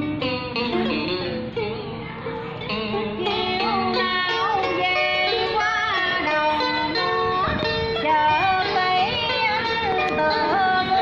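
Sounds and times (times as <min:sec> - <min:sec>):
plucked guitar: 0:00.0 - 0:11.0.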